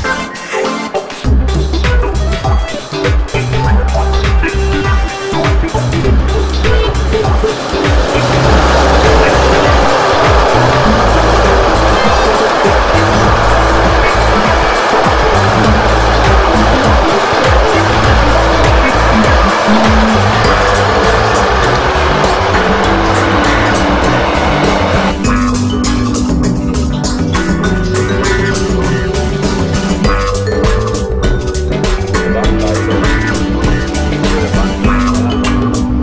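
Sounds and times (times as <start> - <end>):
background music with bass line: 0.0 - 36.0
freight train wheels on rail: 4.8 - 35.0.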